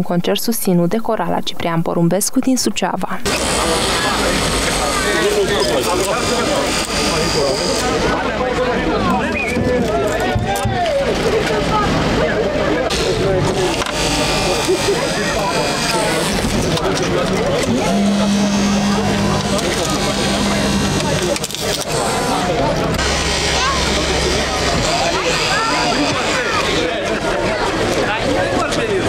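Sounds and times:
crowd chatter: 0.0s - 29.0s
engine running: 3.2s - 29.0s
steady hum: 11.7s - 28.9s.

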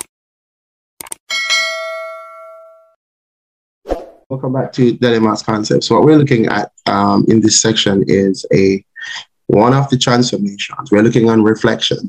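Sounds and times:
notification bell ding: 1.3s - 3.0s.

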